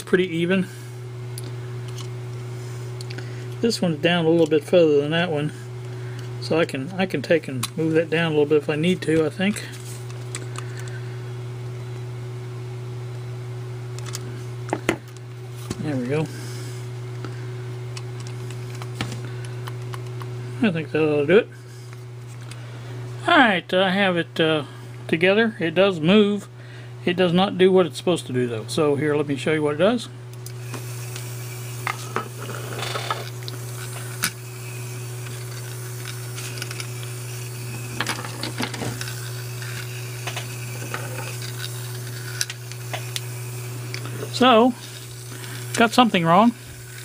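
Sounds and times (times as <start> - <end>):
steady low hum: 0.0 - 47.0
small motors whining: 30.4 - 47.0.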